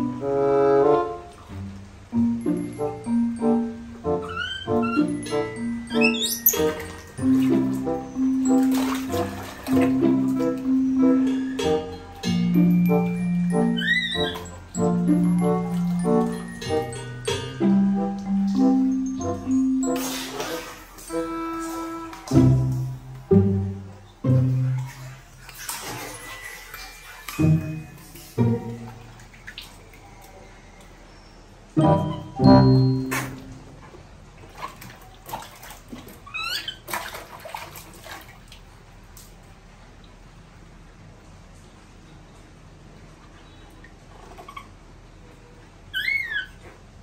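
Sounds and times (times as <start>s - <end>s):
baby monkey high call: 5.9s - 6.6s, 13.5s - 14.6s, 31.8s - 32.5s, 36.3s - 36.8s, 45.9s - 46.6s
water splashing in plastic basin: 6.1s - 13.2s, 19.8s - 23.5s, 24.2s - 30.4s, 33.1s - 40.1s.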